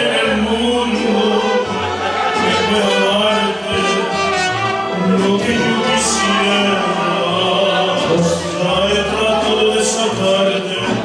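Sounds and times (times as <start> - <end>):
man singing into a microphone: 0.0 - 11.0
mariachi band playing: 0.0 - 11.0.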